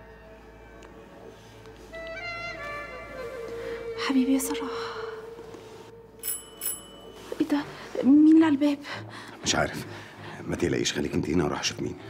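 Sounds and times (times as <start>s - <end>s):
doorbell ringing: 6.2s - 7.4s.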